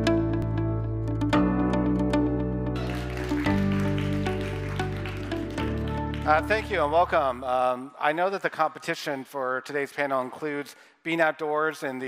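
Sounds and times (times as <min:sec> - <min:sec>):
intro music with plucked notes: 0:00.0 - 0:07.5.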